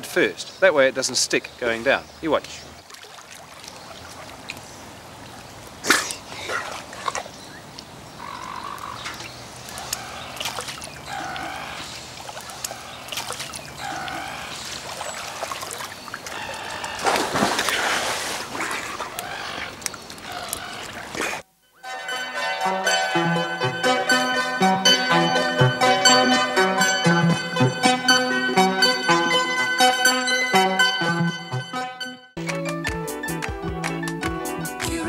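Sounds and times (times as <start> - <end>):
water splashing and dripping: 2.8 - 8.0, 8.6 - 21.4
wet slaps: 12.3 - 13.6.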